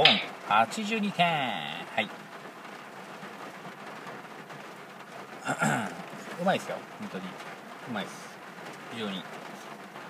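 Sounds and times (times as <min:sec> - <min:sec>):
heavy rain falling: 0:00.0 - 0:10.0.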